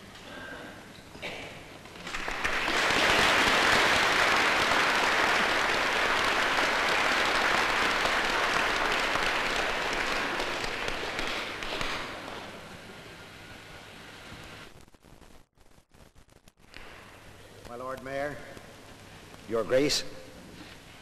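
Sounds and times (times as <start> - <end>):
audience applauding: 2.0 - 12.5.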